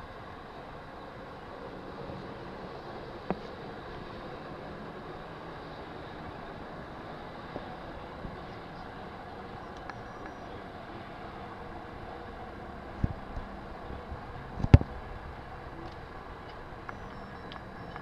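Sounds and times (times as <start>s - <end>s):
faint clicks: 9.7s - 10.4s.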